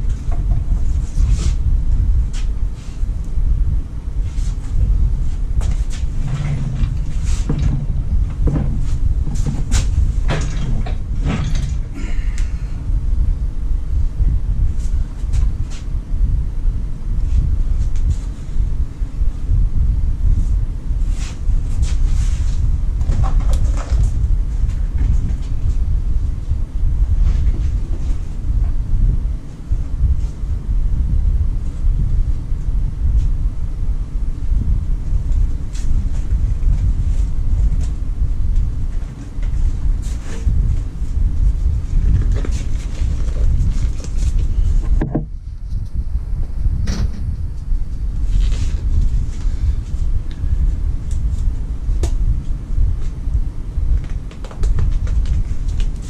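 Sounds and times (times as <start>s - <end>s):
low rumble: 0.0s - 56.0s.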